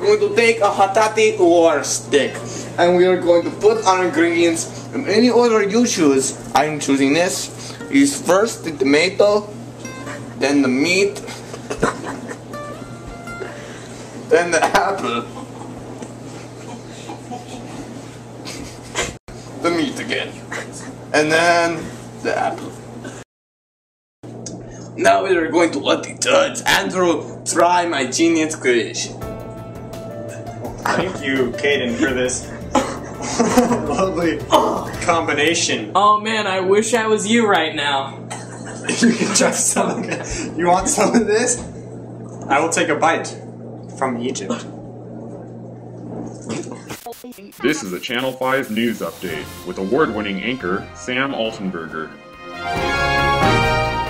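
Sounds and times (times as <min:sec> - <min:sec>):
low electrical hum: 0:00.0 - 0:23.2, 0:24.3 - 0:52.1
muffled vocal sound: 0:47.0 - 0:49.5.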